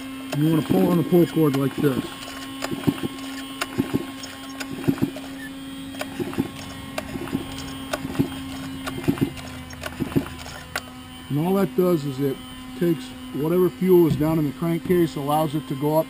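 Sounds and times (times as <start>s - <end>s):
steady hum: 0.0s - 16.0s
chainsaw recoil starter pulls: 0.2s - 11.0s.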